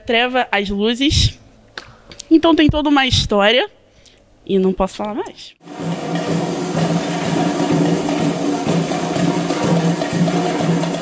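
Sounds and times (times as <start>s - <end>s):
tamborim samba beat: 5.6s - 11.0s.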